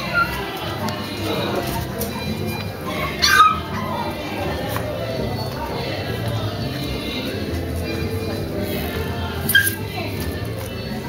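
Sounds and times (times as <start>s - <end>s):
puppy yipping: 0.0s - 0.5s, 3.2s - 4.2s, 9.5s - 9.8s
background music: 0.0s - 11.0s.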